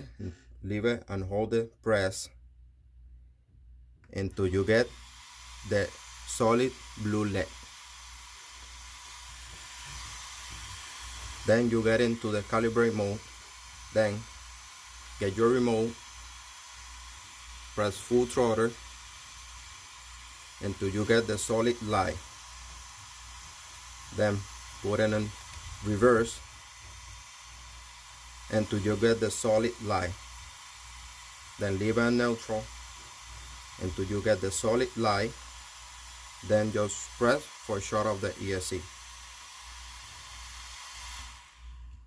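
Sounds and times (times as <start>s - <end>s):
person speaking: 0.0s - 2.4s, 4.0s - 7.6s, 11.2s - 14.4s, 15.0s - 16.1s, 17.6s - 18.9s, 20.5s - 22.3s, 24.0s - 26.5s, 28.4s - 30.2s, 31.6s - 32.8s, 33.8s - 35.4s, 36.4s - 39.0s
faint steady hiss: 0.0s - 42.0s.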